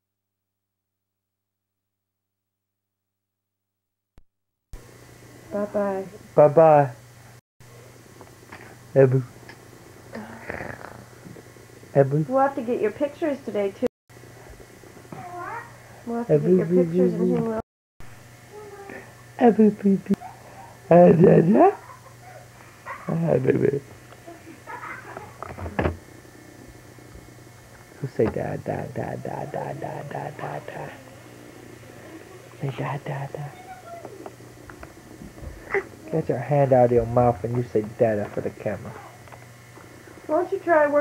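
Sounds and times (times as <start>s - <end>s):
steady low hum: 4.8s - 41.0s.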